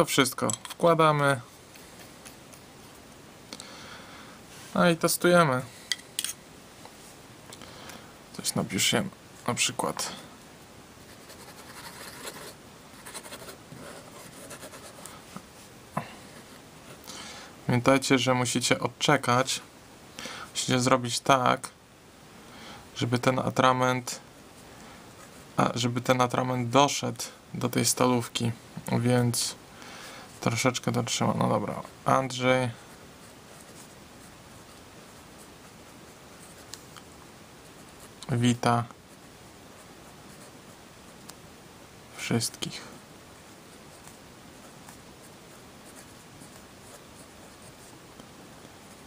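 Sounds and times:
pen nib scratching paper: 0:11.1 - 0:15.1.

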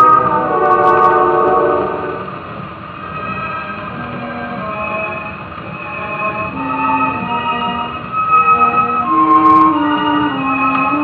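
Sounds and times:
orchestra on old record: 0:00.0 - 0:11.0.

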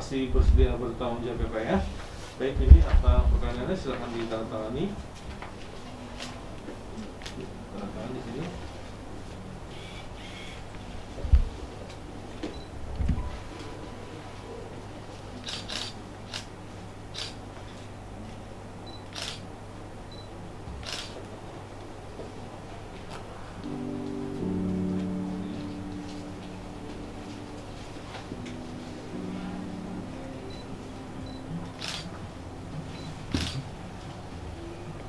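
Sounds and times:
faint room hum: 0:00.0 - 0:35.0
camera shutter clicks: 0:15.4 - 0:16.5, 0:17.2 - 0:17.4, 0:19.1 - 0:19.4, 0:20.8 - 0:21.2, 0:31.8 - 0:32.1, 0:33.4 - 0:33.6.

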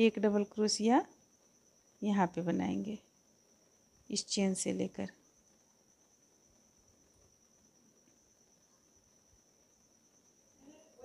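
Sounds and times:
steady high-pitched whine: 0:00.0 - 0:11.0.

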